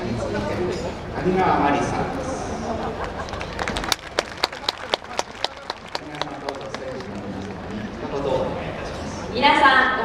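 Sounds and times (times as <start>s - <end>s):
voices with laughter: 2.4s - 3.8s
group hand claps: 3.0s - 7.8s.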